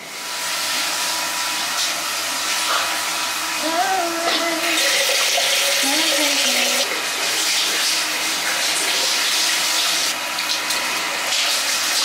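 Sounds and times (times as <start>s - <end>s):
water running from a tap: 0.0s - 12.0s.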